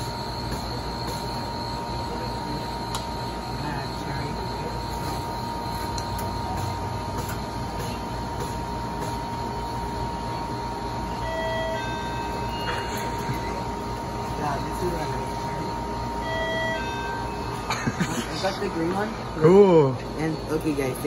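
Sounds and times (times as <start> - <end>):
drink dispenser humming: 0.0 - 21.0
high whine: 0.0 - 21.0
refrigeration running: 0.0 - 21.0.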